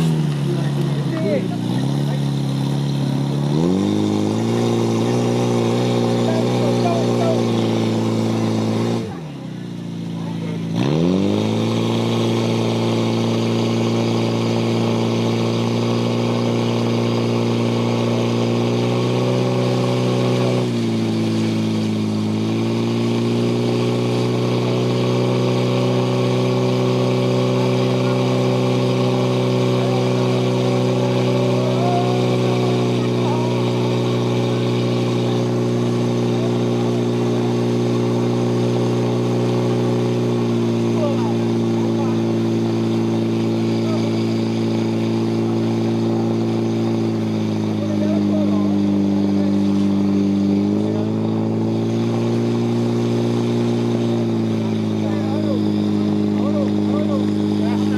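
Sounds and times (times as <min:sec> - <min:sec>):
pump engine running at high revs: 0:00.0 - 0:57.9.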